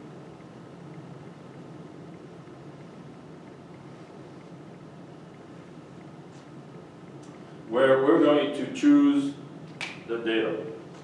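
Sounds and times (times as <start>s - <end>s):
low ventilation hum: 0.0s - 11.0s.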